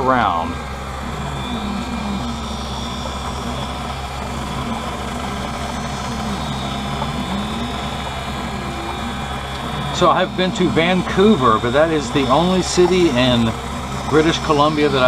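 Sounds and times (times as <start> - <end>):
lens edger grinding hum: 0.6 - 15.0.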